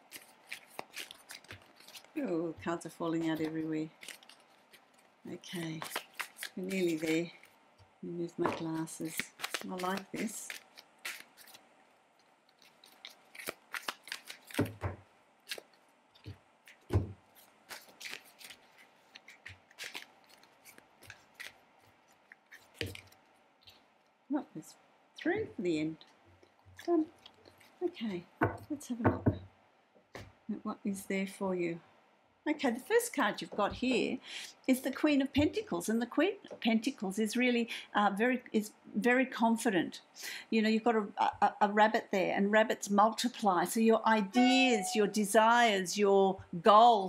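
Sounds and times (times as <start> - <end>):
cards being shuffled: 0.0 - 2.3, 3.2 - 7.5, 8.4 - 23.9.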